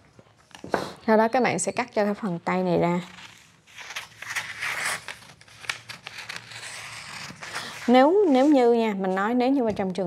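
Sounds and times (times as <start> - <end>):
paper crinkling and rustling: 3.0 - 8.6
shears cutting paper: 3.1 - 8.6.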